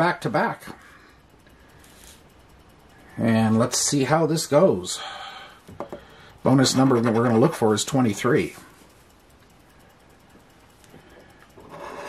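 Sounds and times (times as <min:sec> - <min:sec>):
coin scratching lottery ticket: 0:06.5 - 0:07.8, 0:11.6 - 0:12.0.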